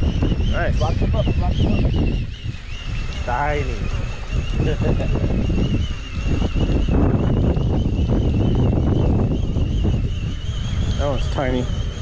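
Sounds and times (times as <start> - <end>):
outboard motor running: 0.0 - 12.0
thin wavering high whine: 0.0 - 12.0
wind buffeting microphone: 0.0 - 12.0.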